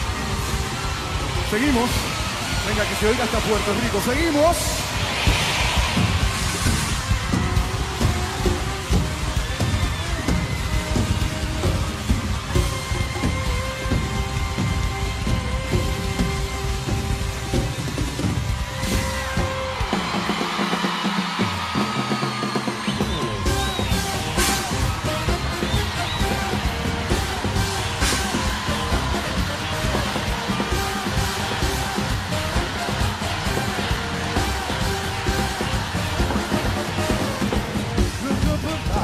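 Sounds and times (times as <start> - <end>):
pop band music: 0.0 - 39.0.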